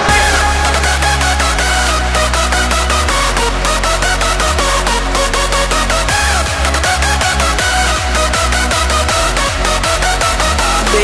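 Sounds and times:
distorted kick drum: 0:00.0 - 0:03.4
hard dance music: 0:00.0 - 0:11.0.

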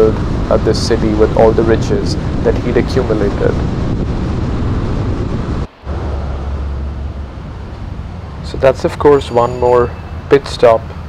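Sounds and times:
car road noise: 0:00.0 - 0:11.0.

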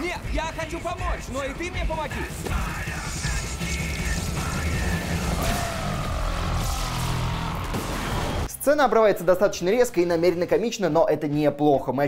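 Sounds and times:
dramatic film score: 0:00.0 - 0:08.6
heavy low rumbling: 0:02.2 - 0:08.5
thin falling whine: 0:04.0 - 0:08.5.

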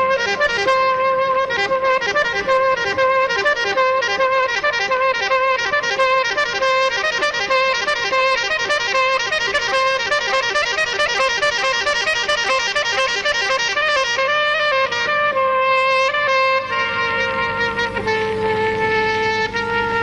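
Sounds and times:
saxophone ballad over backing track: 0:00.0 - 0:20.0.

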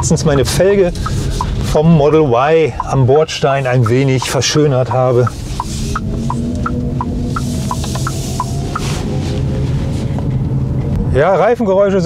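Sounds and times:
tyre and road noise: 0:00.0 - 0:12.0.

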